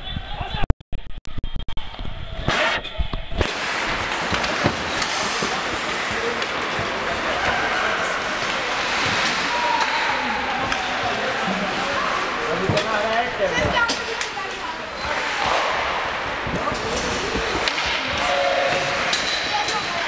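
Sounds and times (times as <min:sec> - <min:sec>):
ice hockey game din: 0:00.0 - 0:20.0.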